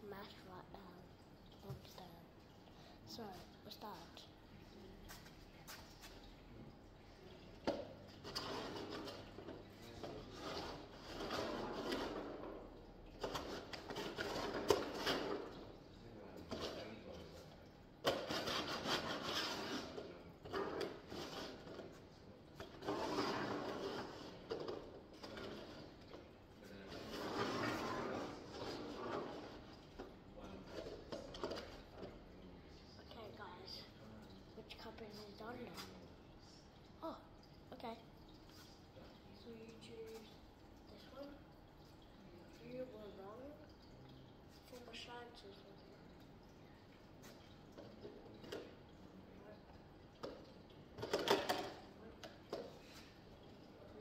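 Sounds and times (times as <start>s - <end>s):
plastic cups scraping on table: 7.6s - 15.7s, 18.0s - 32.2s, 51.0s - 53.2s.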